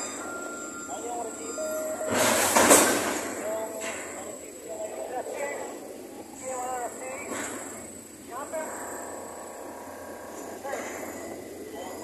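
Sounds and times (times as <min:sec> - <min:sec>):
crane machinery pitched tones: 0:00.0 - 0:12.0
rushing clattering noise: 0:02.1 - 0:04.3.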